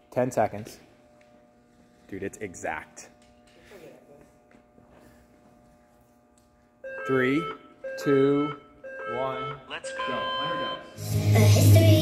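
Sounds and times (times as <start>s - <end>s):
electrical hum: 0.0s - 12.0s
countdown timer beep: 6.9s - 11.0s.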